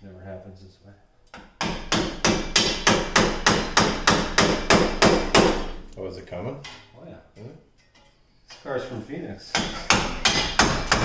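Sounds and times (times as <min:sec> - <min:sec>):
hammer striking steel wheel hub: 0:09.6 - 0:11.0.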